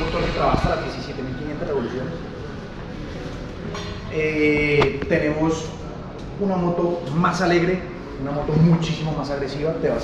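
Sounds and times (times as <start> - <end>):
room background noise: 0.0 - 10.0.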